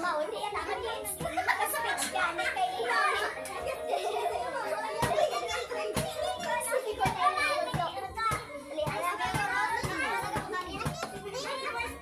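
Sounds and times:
children and adults chattering: 0:00.0 - 0:12.0.

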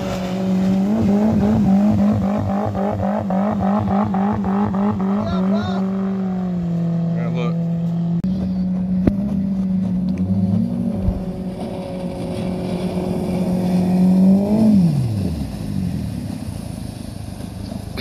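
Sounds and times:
boat engine passing by: 0:00.0 - 0:18.0
outboard motor boats at speed: 0:00.0 - 0:18.0.

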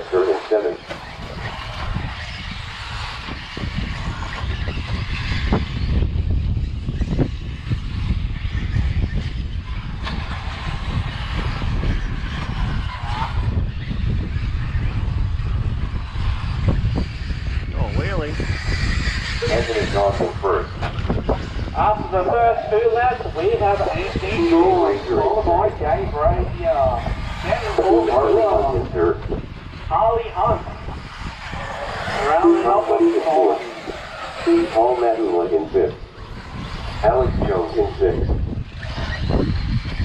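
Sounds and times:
wind buffeting microphone: 0:00.0 - 0:40.0
person speaking: 0:34.4 - 0:35.9.

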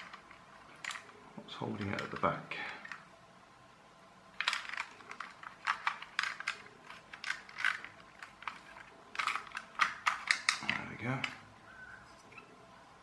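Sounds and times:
plastic clicks and scraping: 0:00.0 - 0:03.1, 0:04.4 - 0:11.4.

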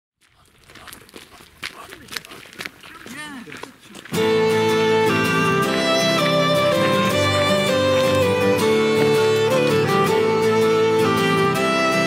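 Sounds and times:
footsteps on pavement: 0:00.2 - 0:10.9.

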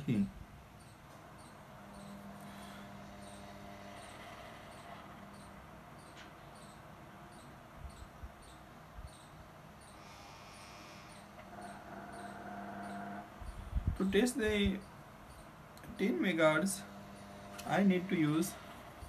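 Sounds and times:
electrical hum: 0:00.0 - 0:19.0.

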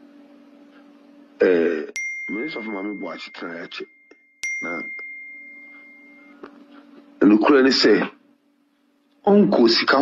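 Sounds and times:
steady low hum: 0:00.0 - 0:10.0
high bell-like tone: 0:02.0 - 0:07.1.

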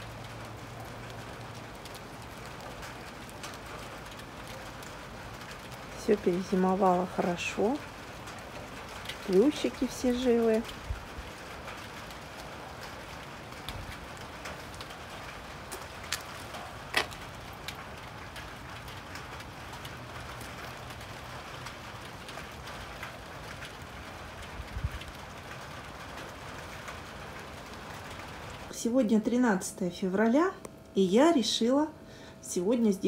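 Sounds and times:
light rain patter: 0:00.0 - 0:33.0.

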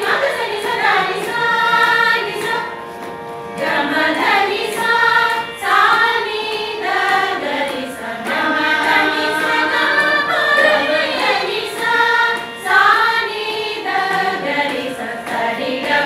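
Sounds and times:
women singing together: 0:00.0 - 0:02.8, 0:03.6 - 0:16.0.

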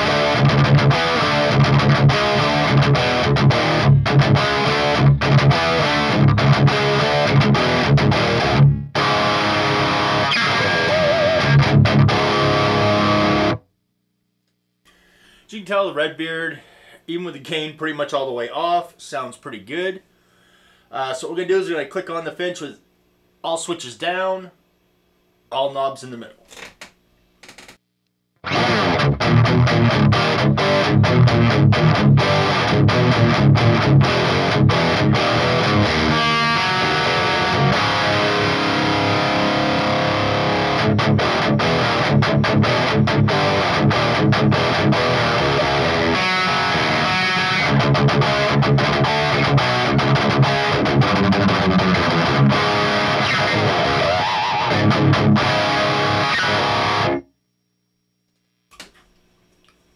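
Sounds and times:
distorted electric guitar riffing: 0:00.0 - 0:13.6, 0:28.4 - 0:57.3.

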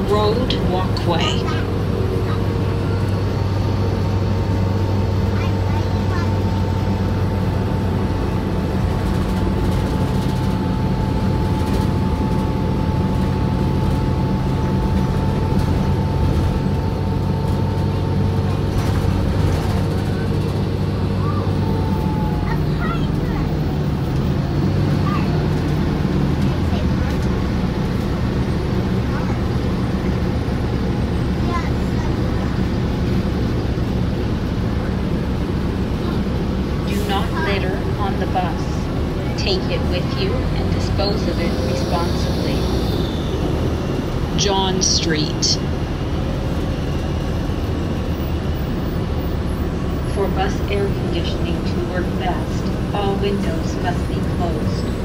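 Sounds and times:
bus engine low drone: 0:00.0 - 0:55.0.

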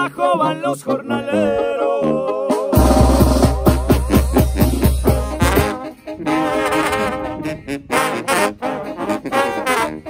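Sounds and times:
trombones and trumpets melody: 0:00.0 - 0:10.0
bass notes and drum strokes: 0:02.5 - 0:05.9.

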